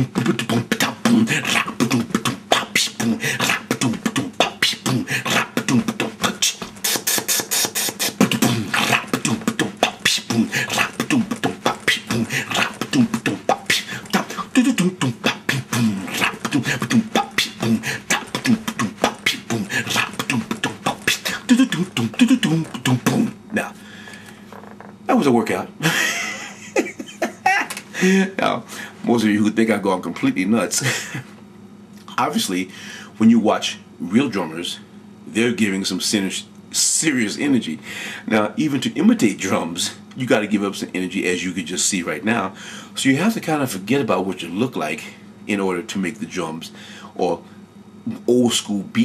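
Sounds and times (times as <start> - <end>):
man beatboxing: 0.0 - 23.8, 32.0 - 33.4.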